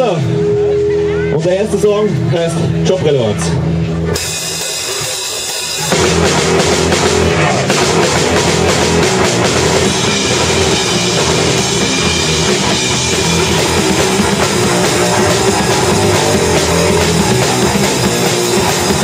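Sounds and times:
guitar: 0.0 - 19.0
live rock band playing: 0.0 - 19.0
drum kit: 3.7 - 19.0.

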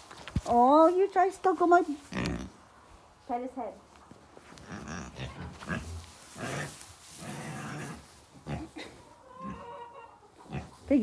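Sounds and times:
pig grunting: 4.6 - 9.7.

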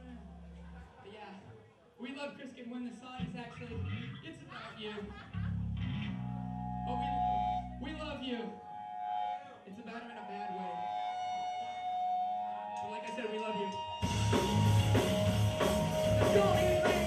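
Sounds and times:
held electric guitar notes: 13.8 - 17.0
band playing loud punk rock: 14.0 - 17.0
crowd chatter: 14.0 - 17.0.

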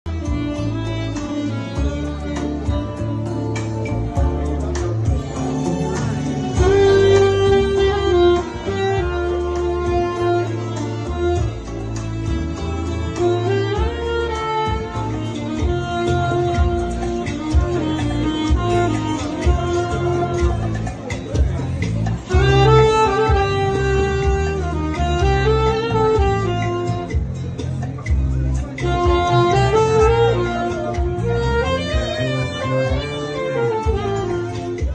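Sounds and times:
backing track with bass line: 0.0 - 34.9
saxophone melody: 0.1 - 34.9.

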